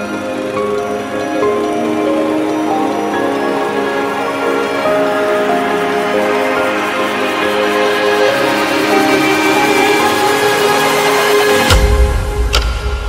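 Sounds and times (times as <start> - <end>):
background music of held notes: 0.0 - 13.0.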